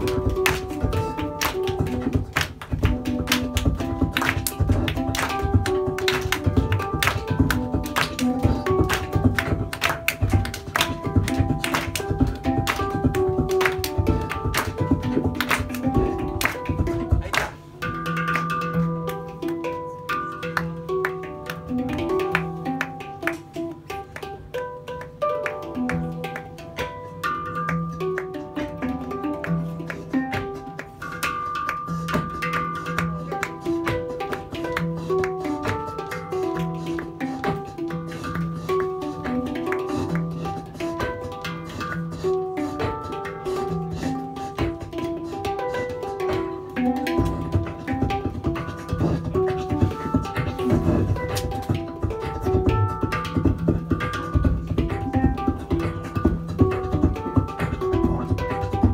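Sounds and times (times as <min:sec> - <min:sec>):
person beatboxing: 0:00.0 - 0:24.4, 0:27.8 - 0:58.9
handpan ringing notes: 0:00.0 - 0:58.9.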